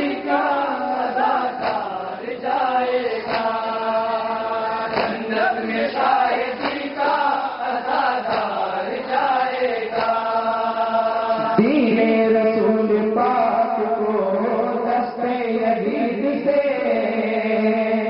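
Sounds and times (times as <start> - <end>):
men chanting a lament over loudspeakers: 0.0 - 18.0
chest-beating slaps: 1.4 - 10.4.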